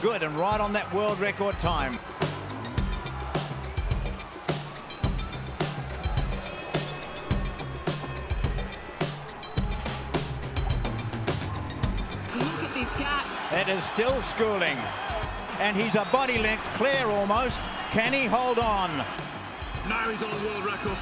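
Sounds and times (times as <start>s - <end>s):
music with pulsing bass: 1.6s - 13.2s.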